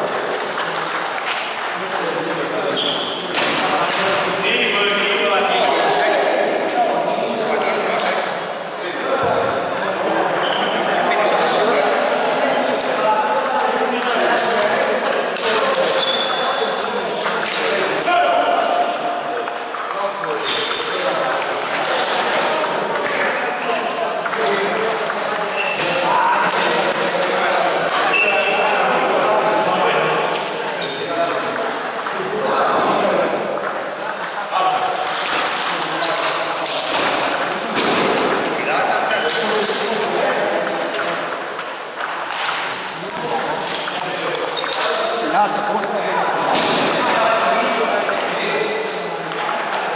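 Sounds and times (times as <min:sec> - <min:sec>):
table tennis balls clicking: 0:00.0 - 0:04.4, 0:08.9 - 0:18.1, 0:18.8 - 0:49.9
people talking: 0:00.0 - 0:49.9.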